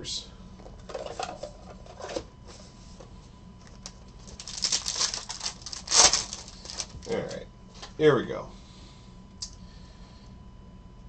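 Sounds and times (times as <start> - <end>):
foil wrapper crinkling: 3.8 - 7.4.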